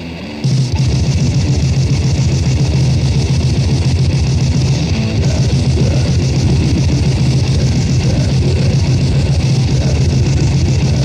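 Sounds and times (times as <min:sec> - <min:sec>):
heavily distorted metal band playing: 0:00.0 - 0:11.0.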